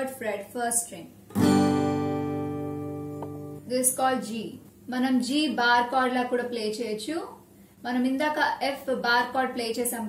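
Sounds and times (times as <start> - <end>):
acoustic guitar chord strum: 1.3 - 3.7.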